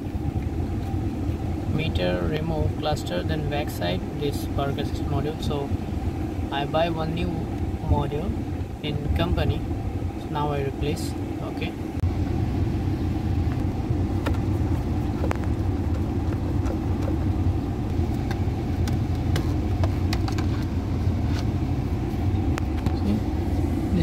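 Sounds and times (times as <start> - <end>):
car engine idling: 0.0 - 24.0.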